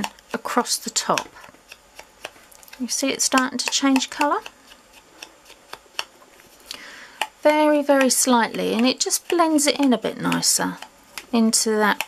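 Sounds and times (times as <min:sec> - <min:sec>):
sponge dauber tapping: 0:00.0 - 0:06.5, 0:07.2 - 0:12.0.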